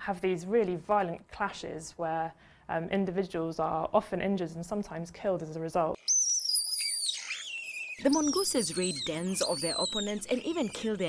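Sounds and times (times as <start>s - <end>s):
mongooses screeching: 6.0s - 11.0s.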